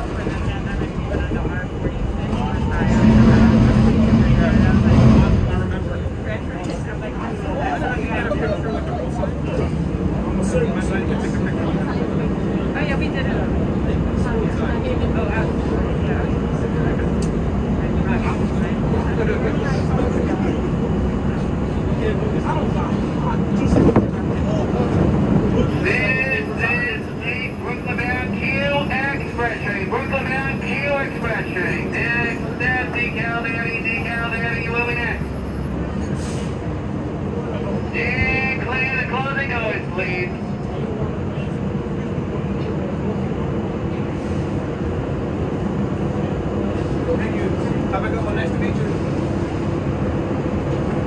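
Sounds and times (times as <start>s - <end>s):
subway car rumble: 0.0s - 51.0s.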